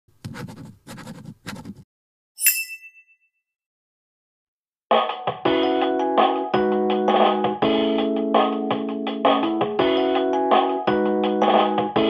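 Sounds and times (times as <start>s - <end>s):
bright chime: 2.4s - 3.1s.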